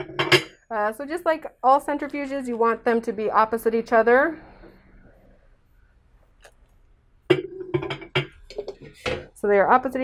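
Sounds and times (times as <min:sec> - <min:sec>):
hollow clunks and knocks: 0:00.0 - 0:00.6, 0:07.3 - 0:09.3.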